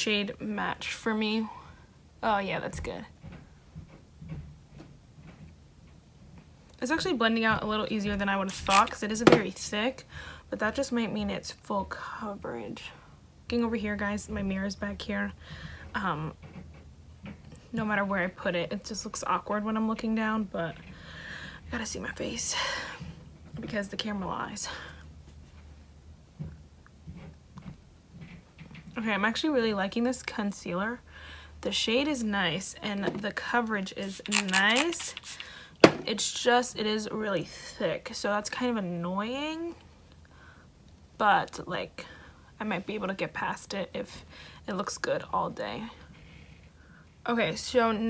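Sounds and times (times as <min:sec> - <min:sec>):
low room hum: 0:00.0 - 0:48.0
makeup sponge dabbing skin: 0:08.5 - 0:09.0, 0:34.0 - 0:35.4.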